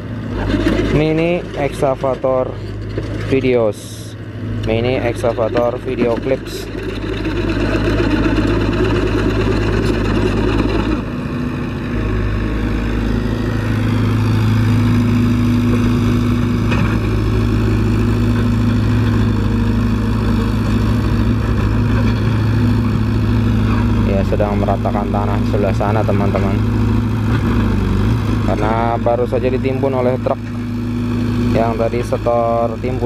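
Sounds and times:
excavator diesel engine running: 0.0s - 33.0s.

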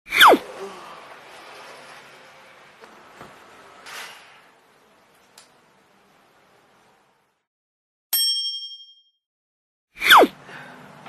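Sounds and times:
bright bell-like ding: 8.1s - 9.2s.

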